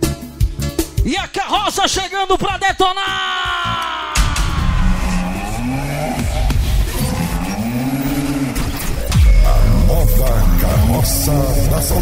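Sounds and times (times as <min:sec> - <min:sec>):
heavy bass drops: 0:04.2 - 0:12.0.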